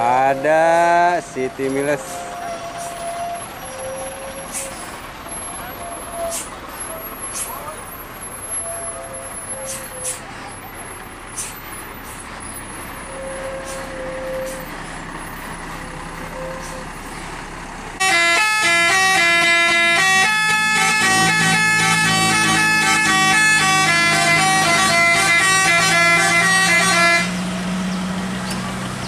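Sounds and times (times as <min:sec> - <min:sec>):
bus driving past: 0:00.0 - 0:29.0
diesel truck driving past: 0:00.0 - 0:29.0
people's voices: 0:04.5 - 0:08.0, 0:09.7 - 0:12.3
musical bus horn: 0:08.4 - 0:10.2, 0:13.0 - 0:14.8, 0:16.2 - 0:17.0, 0:18.0 - 0:27.4.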